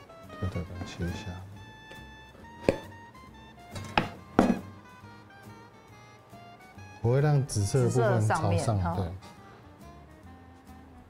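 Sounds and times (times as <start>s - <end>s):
light background music: 0.0s - 11.0s
sharp knocks on metal tray: 3.8s - 4.7s.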